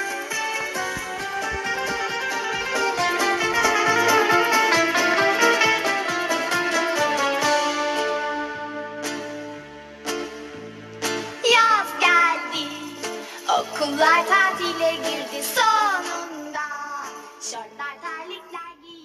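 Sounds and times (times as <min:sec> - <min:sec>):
plucked-string instrumental music: 0:00.0 - 0:17.6.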